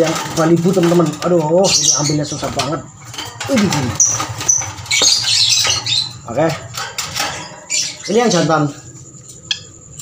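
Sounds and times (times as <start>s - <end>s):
bird squeaking: 1.5s - 8.8s, 9.4s - 10.0s
shrill bird calls: 3.8s - 6.2s.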